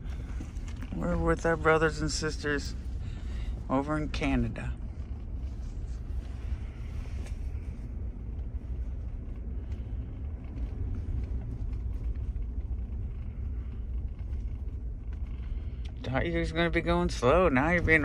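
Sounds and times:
car engine and tyres rumbling: 0.0s - 18.0s.

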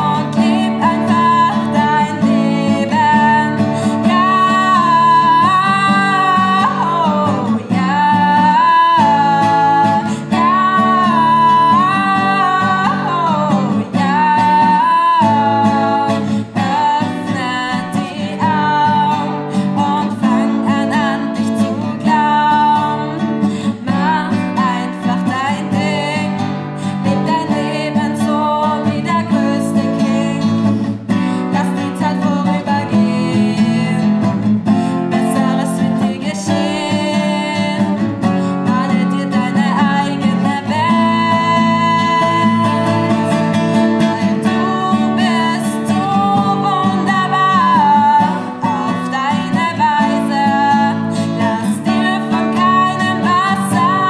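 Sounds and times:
strummed nylon-string guitar: 0.0s - 54.0s
woman singing: 0.0s - 54.0s.

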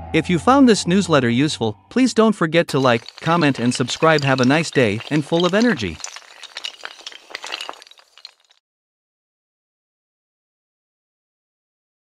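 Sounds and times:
glass shattering: 2.7s - 8.6s.

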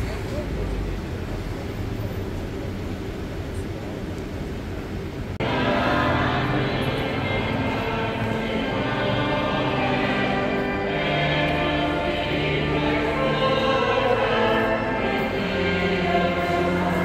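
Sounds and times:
street voices: 0.0s - 17.0s
traffic: 0.0s - 17.0s
music with held notes: 5.4s - 17.0s.

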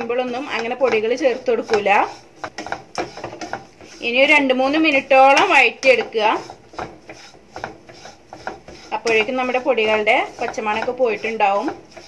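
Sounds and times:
wooden spatula scraping pan: 0.0s - 12.0s.

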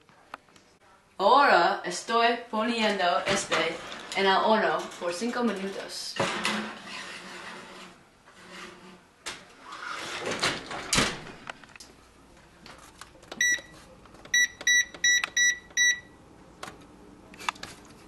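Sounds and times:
baking tray scraping oven rack: 3.3s - 10.8s
control panel beeps: 13.4s - 13.7s, 14.3s - 16.1s.

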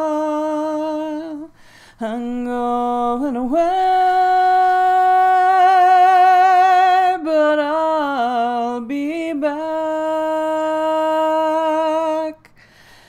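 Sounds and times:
woman singing unaccompanied: 0.0s - 12.5s.

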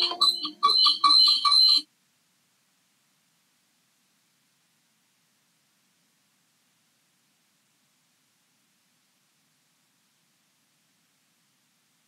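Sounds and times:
electronic chime notes: 0.0s - 1.8s
high steady tone: 0.0s - 1.8s
rapid electronic beeping: 0.0s - 1.8s.

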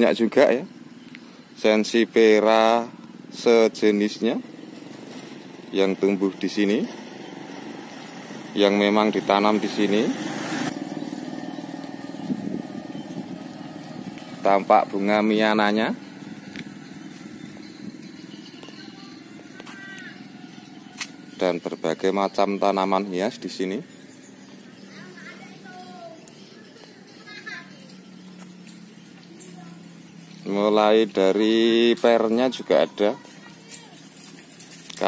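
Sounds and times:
motorcycle engine running: 0.0s - 35.0s
children's voices: 18.6s - 20.3s, 24.8s - 28.2s, 29.2s - 30.0s, 32.3s - 34.2s
child's high-pitched shout: 19.0s - 20.2s.

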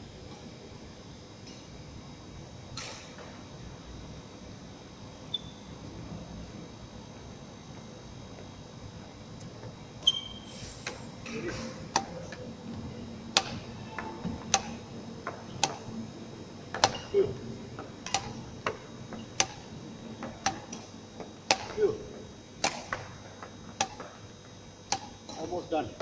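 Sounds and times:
wall fans humming: 0.0s - 26.0s
shoe squeaks: 5.3s - 5.7s, 10.0s - 11.6s.

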